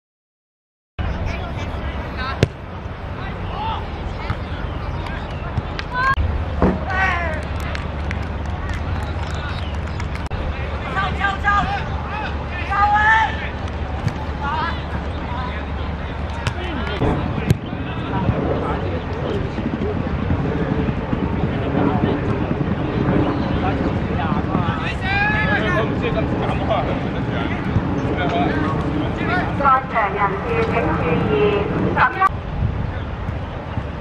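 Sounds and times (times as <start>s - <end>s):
murmur of voices: 1.0s - 33.7s
people shouting and calling: 10.8s - 13.6s, 24.8s - 26.0s
wind rumble on microphone: 13.3s - 34.0s.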